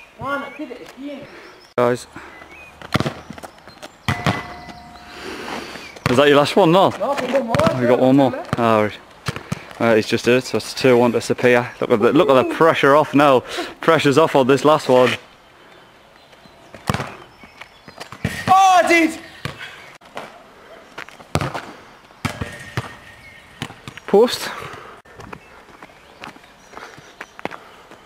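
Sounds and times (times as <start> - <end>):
low outdoor background: 0.0 - 28.0
football kick thump: 4.1 - 4.8
metal ringing: 4.1 - 5.9
ball hitting metal goal frame: 4.1 - 6.2.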